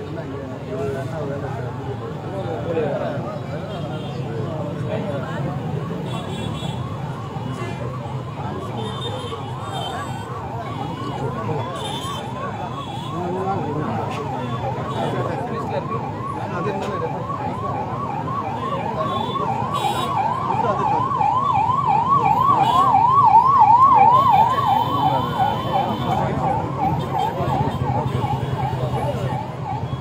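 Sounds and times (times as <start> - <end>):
warbling emergency siren: 4.7 - 30.0.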